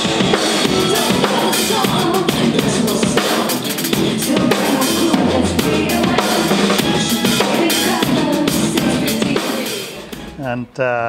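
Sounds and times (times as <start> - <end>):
drum kit played fast: 0.0 - 10.6.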